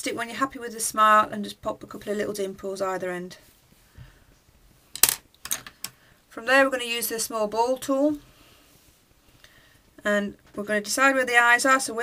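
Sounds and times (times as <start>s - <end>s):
tools clattering on hard surface: 5.0s - 5.8s.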